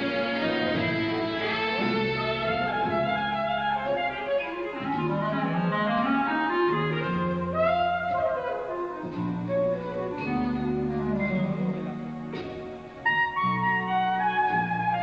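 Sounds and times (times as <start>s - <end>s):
bass: 0.0s - 15.0s
clarinet playing jazz melody: 0.0s - 15.0s
drums: 0.0s - 15.0s.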